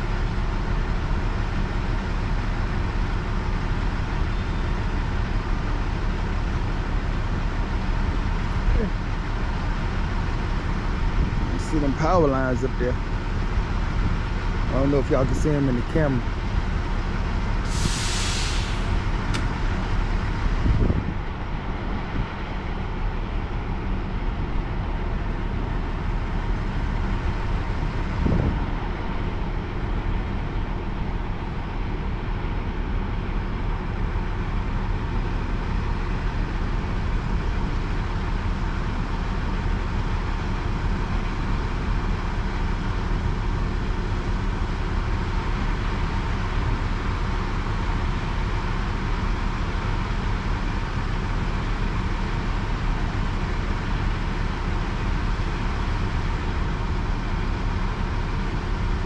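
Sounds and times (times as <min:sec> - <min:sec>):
heavy diesel engine running: 0:00.0 - 0:59.0
short hiss: 0:17.6 - 0:19.5.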